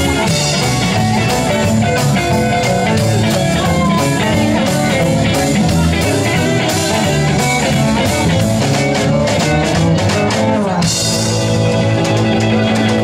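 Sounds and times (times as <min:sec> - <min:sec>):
drum kit beat: 0:00.0 - 0:13.0
electric guitars: 0:00.0 - 0:13.0.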